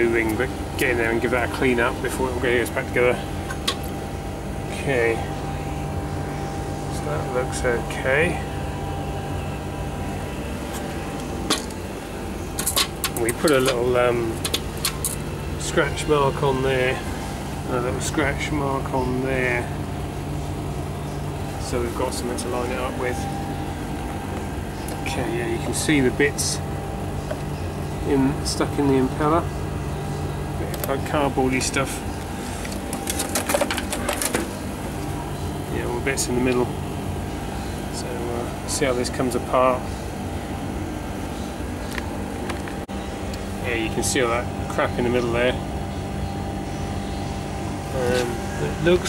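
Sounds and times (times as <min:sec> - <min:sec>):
steady mechanical hum: 0:00.0 - 0:49.0.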